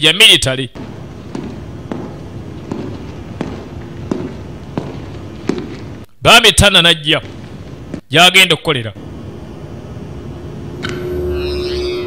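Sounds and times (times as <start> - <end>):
low steady hum: 0.0 - 12.0
footsteps on a hard floor: 0.8 - 6.1, 7.2 - 8.1.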